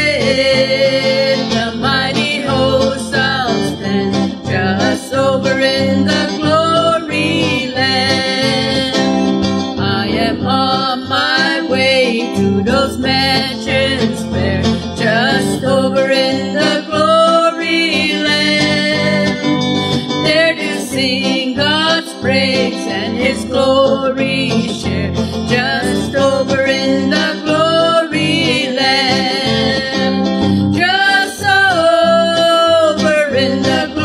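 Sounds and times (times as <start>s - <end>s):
women singing gospel song: 0.0s - 19.5s, 20.2s - 34.0s
guitar-led country accompaniment: 0.0s - 34.0s.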